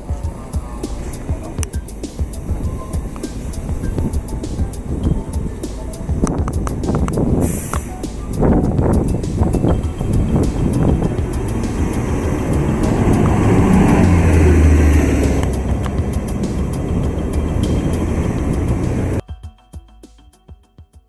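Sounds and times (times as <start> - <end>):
bus passing: 0.0 - 19.2
cars passing: 0.0 - 19.2
deep engine rumble: 0.0 - 19.2
soft music: 0.0 - 21.0.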